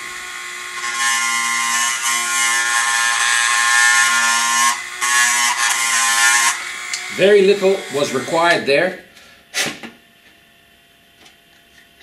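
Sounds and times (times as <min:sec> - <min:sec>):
rotary tool whining: 0:00.0 - 0:08.7.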